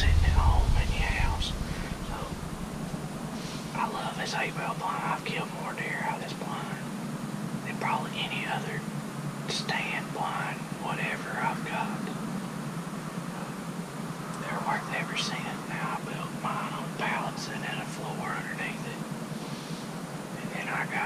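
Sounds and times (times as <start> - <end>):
man whispering: 0.0 - 2.4, 3.7 - 6.9, 7.6 - 8.8, 9.5 - 12.2, 14.4 - 19.0, 20.4 - 21.0
steady low hum: 0.0 - 21.0.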